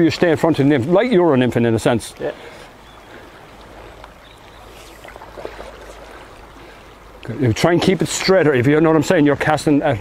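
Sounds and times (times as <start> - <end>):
river water rushing: 0.4 - 8.8.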